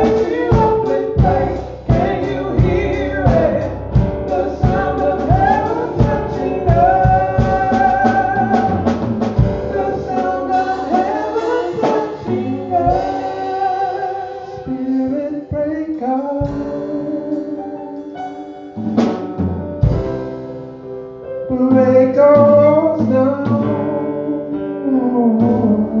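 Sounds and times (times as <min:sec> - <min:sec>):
woman singing gospel: 0:00.0 - 0:03.6, 0:04.3 - 0:08.8, 0:09.6 - 0:16.6
drum kit steady beat: 0:00.0 - 0:15.7, 0:16.4 - 0:20.8
electric keyboard: 0:00.0 - 0:26.0.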